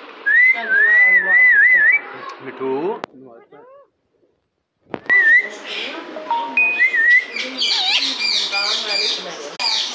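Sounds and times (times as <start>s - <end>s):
parakeet whistling and chirping: 5.1s - 9.9s.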